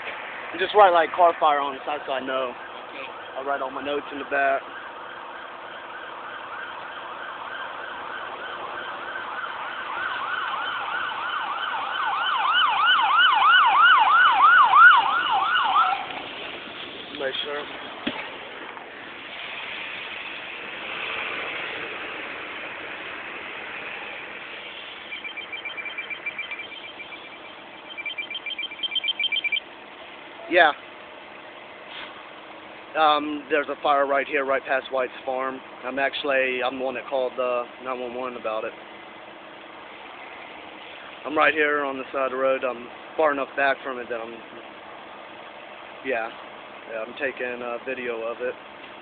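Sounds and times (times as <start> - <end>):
emergency vehicle siren: 0.2 - 18.2, 19.1 - 31.6
rapid high beeping: 25.0 - 29.6.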